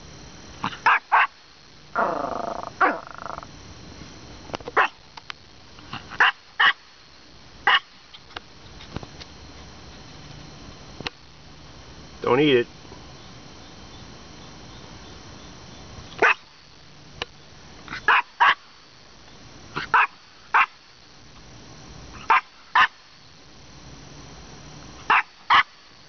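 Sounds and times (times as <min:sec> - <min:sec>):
small dog yapping: 0:00.6 - 0:01.4, 0:02.8 - 0:03.2, 0:04.8 - 0:05.0, 0:07.7 - 0:07.9, 0:16.2 - 0:16.4, 0:17.9 - 0:18.6, 0:19.8 - 0:20.8, 0:25.1 - 0:25.7.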